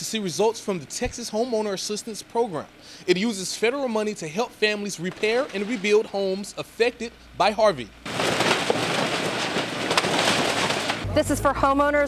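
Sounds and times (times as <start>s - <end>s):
falling debris: 4.6s - 7.0s, 8.0s - 11.4s
sharp crack: 4.9s - 6.6s, 8.0s - 11.2s
wood splintering and snapping: 4.9s - 6.6s, 8.0s - 11.2s.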